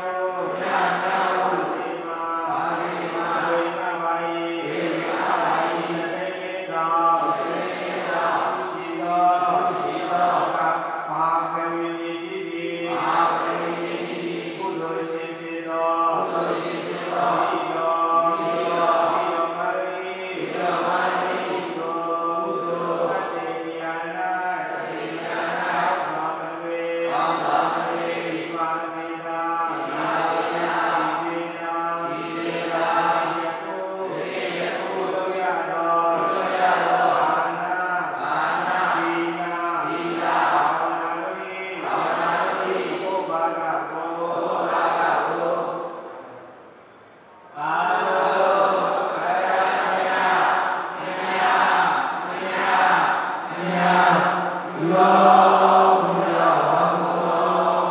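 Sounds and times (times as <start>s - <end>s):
amplified chanting over loudspeakers: 0.0s - 57.9s.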